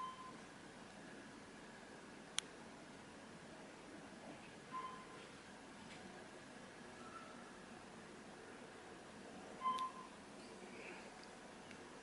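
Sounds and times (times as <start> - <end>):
elevator electronic beep: 0.0 - 0.4, 4.7 - 5.2, 9.6 - 10.2
faint background hiss: 0.0 - 12.0.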